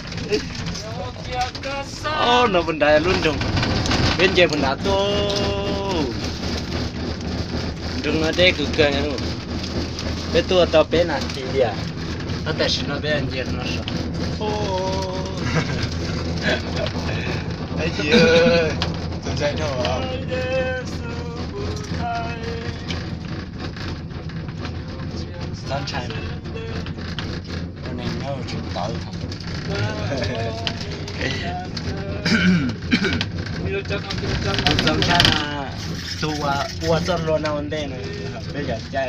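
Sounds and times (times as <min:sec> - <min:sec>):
cable car cabin hum and hiss: 0:00.0 - 0:39.0
voices talking: 0:27.8 - 0:39.0.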